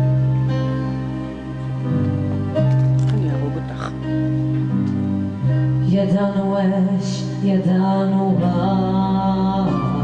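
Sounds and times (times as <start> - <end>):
slow instrumental song: 0.0 - 10.0.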